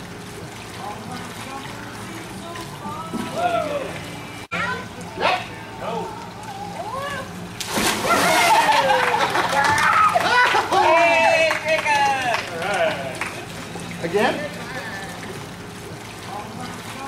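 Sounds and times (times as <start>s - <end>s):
pool water splashing: 0.0s - 17.0s
big splash into pool: 7.6s - 10.3s.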